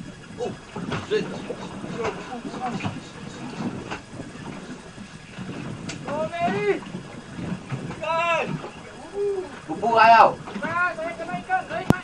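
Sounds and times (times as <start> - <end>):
outboard motors idling: 0.0 - 12.0.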